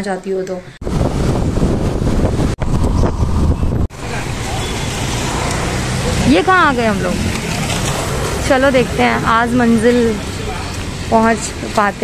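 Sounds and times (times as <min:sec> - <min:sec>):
street traffic noise: 0:00.6 - 0:12.0
wind buffeting microphone: 0:00.8 - 0:12.0
scooter engine running: 0:04.4 - 0:11.4.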